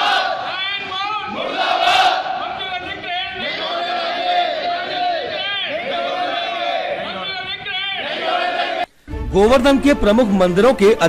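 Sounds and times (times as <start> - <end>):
crowd of men shouting slogans: 0.0 - 8.9.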